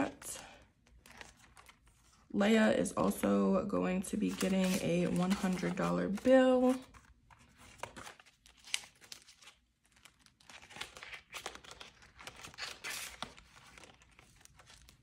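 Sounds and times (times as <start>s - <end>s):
banknotes and plastic rustling: 4.0s - 15.0s.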